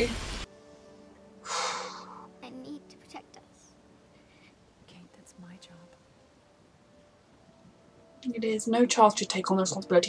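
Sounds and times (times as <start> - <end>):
person gasping: 1.4 - 2.2.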